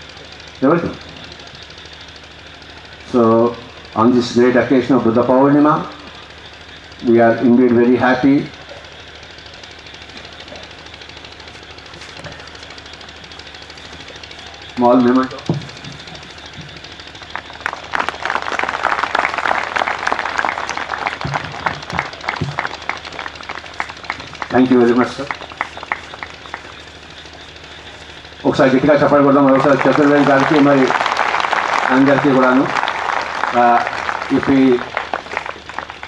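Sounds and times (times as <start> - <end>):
machine-like pulsing buzz: 0.0 - 36.0
steady background hum: 0.0 - 36.0
hand claps: 17.2 - 26.9, 29.5 - 36.0.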